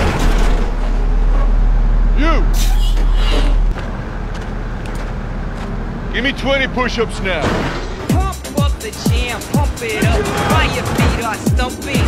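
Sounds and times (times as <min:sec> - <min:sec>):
excavator diesel engines rumbling: 0:00.0 - 0:12.0.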